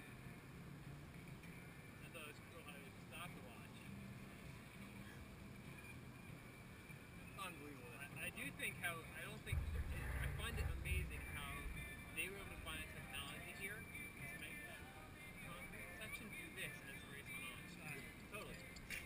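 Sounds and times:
distant voices talking: 8.9s - 19.0s
wind rumble on microphone: 9.4s - 14.3s.

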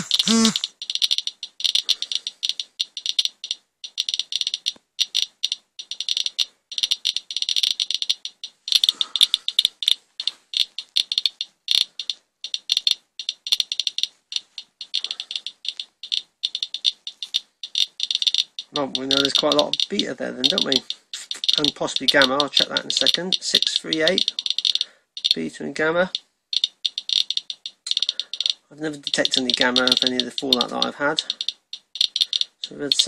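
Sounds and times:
geiger counter clicking rapidly: 0.0s - 33.0s.

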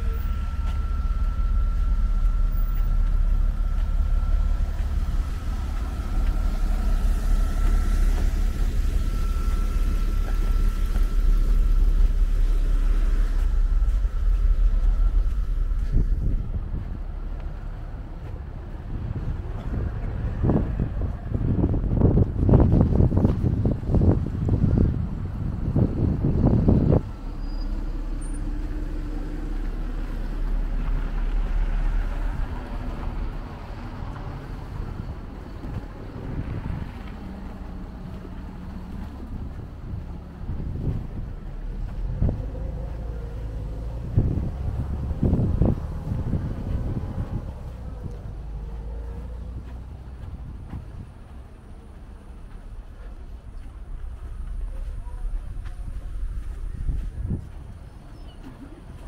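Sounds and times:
low engine rumble: 0.0s - 59.0s
traffic on snowy road: 0.0s - 59.0s
wind buffeting microphone: 0.4s - 59.0s.

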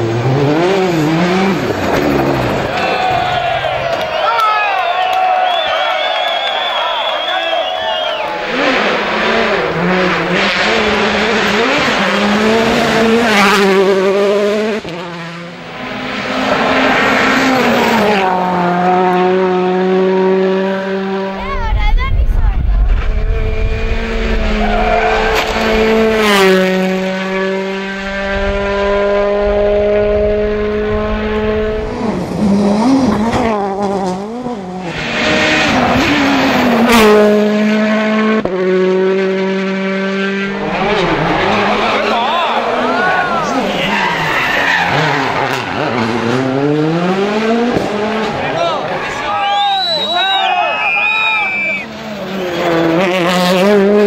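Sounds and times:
rally cars passing at full throttle: 0.0s - 54.0s
deep rumble: 21.4s - 26.4s, 28.0s - 32.2s.

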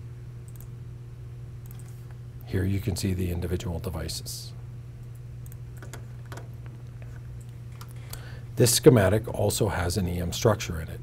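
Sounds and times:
low electrical hum: 0.0s - 11.0s
keyboard and mouse clicks: 0.5s - 0.7s, 5.0s - 6.5s.

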